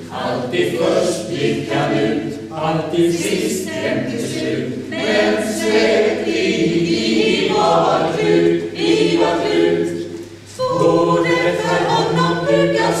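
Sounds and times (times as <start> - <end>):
choir singing in harmony: 0.0 - 13.0.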